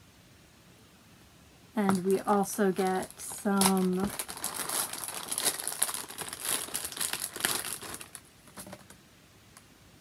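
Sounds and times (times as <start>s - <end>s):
crinkly packaging crumpled: 1.8s - 9.0s.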